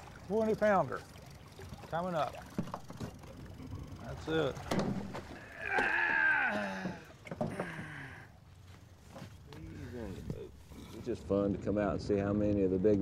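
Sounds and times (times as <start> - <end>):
knocks on boat: 4.6 - 5.3.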